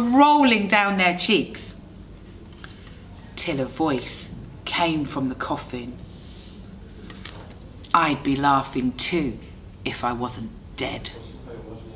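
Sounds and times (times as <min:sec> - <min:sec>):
woman speaking: 0:00.0 - 0:01.8, 0:03.4 - 0:06.0, 0:07.8 - 0:11.2
faint room hiss: 0:00.0 - 0:11.9.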